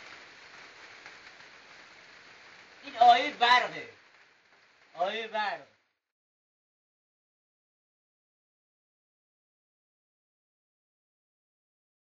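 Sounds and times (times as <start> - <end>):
faint rain hiss: 0.0 - 6.1.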